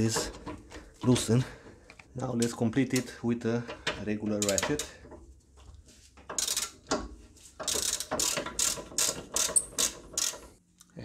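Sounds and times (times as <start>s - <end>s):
hand ratchet clicking: 1.9s - 5.2s, 6.2s - 10.6s.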